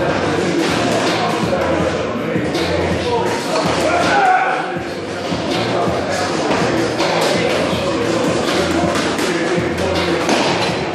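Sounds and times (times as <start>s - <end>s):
indistinct voices: 0.0s - 10.9s
music playing: 0.0s - 10.9s.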